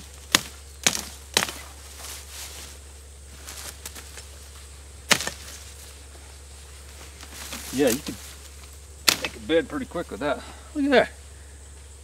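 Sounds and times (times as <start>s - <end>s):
blade chopping through shoots: 0.3s - 1.7s, 5.1s - 5.6s, 9.0s - 9.5s.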